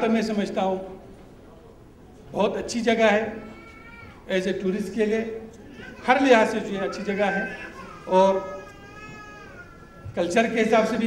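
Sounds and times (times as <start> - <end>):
man speaking over public address: 0.0 - 1.1, 2.3 - 3.6, 4.2 - 8.7, 10.0 - 11.0.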